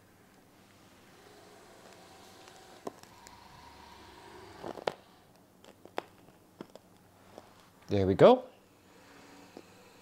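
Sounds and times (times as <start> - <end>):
robotic arm motors whining: 1.1 - 5.3.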